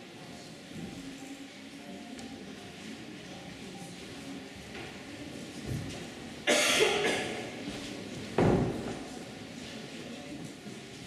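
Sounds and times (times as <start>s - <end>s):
person coughing: 6.5s - 7.4s.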